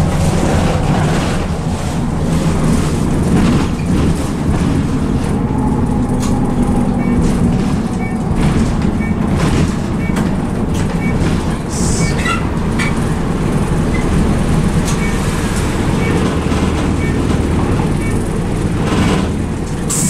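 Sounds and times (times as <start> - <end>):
bus engine and road noise: 0.0 - 20.0.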